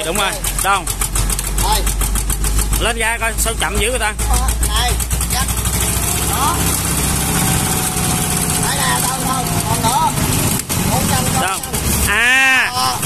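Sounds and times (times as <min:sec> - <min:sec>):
tractor engine running: 0:00.0 - 0:13.0.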